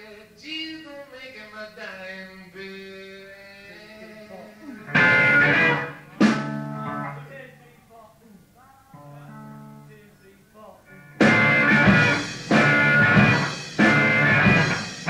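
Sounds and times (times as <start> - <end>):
soft picked guitar notes: 4.7 - 7.2, 9.0 - 10.1, 10.9 - 15.0
guitar notes ringing: 4.7 - 7.3, 8.9 - 10.1, 10.9 - 15.0
loud strummed guitar chords: 4.8 - 7.3, 10.9 - 15.0.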